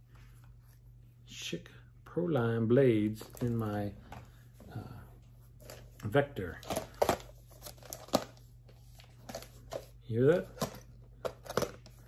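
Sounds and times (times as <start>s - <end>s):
wrapping paper rustling: 5.5s - 12.0s.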